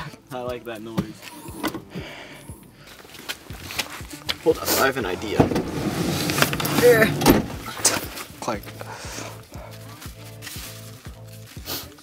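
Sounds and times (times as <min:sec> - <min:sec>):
footsteps: 0:01.0 - 0:12.0.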